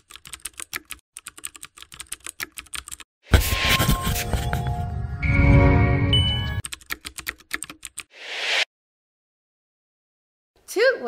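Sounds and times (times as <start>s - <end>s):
jingle music: 3.8s - 6.6s
keyboard typing clicks: 6.6s - 8.1s.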